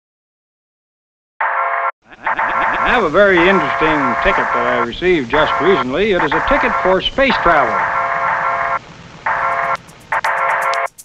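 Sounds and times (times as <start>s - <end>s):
chopped buzzy synth chord: 2.2s - 11.0s.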